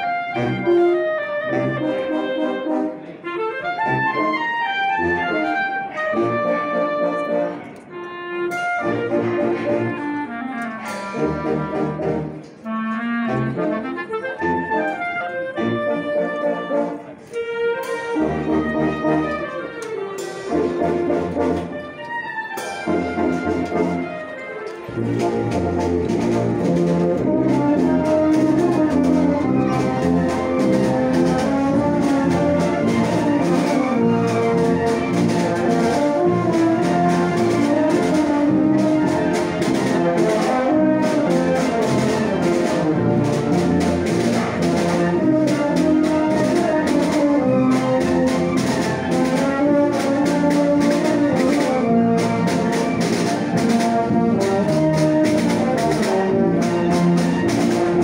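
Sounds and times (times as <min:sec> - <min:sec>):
wind band playing a march: 0:00.0 - 0:58.0.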